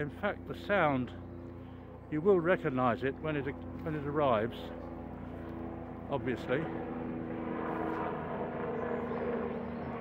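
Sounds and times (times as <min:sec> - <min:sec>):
distant helicopter droning: 0:00.0 - 0:10.0.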